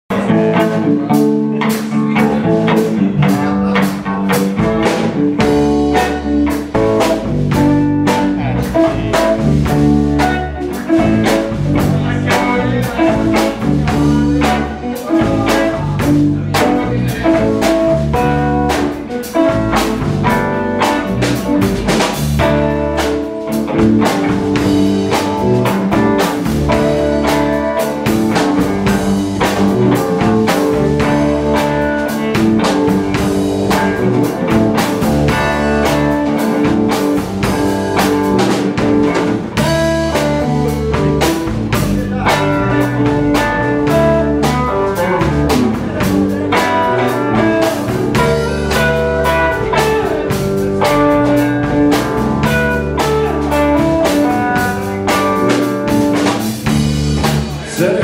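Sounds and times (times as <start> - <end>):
electric bass: 0.0 - 58.0
drum kit: 0.1 - 58.0
electric guitar: 0.1 - 58.0.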